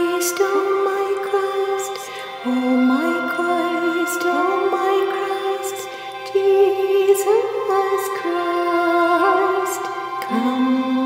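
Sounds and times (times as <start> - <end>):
person chanting long notes: 0.0 - 11.0.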